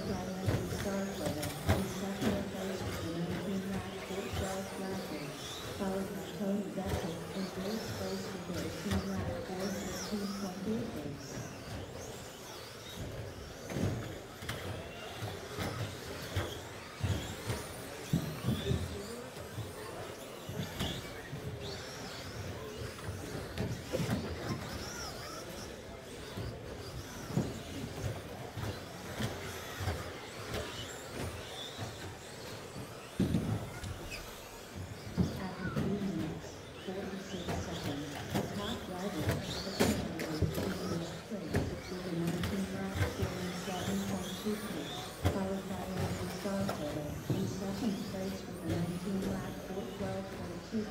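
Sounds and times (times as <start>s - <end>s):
electric motors whining: 0.0s - 50.9s.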